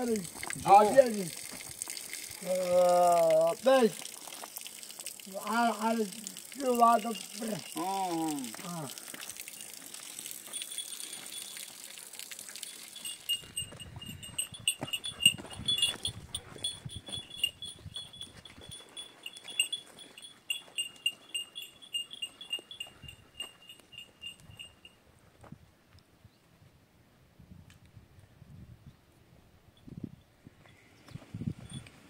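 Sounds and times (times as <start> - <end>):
small metal bell jingling: 6.6 - 8.8, 9.5 - 25.0
footsteps on gravel: 12.4 - 23.9.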